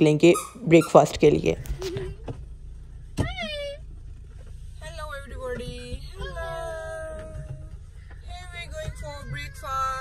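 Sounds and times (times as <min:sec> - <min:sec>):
car interior rumble: 0:00.4 - 0:10.0.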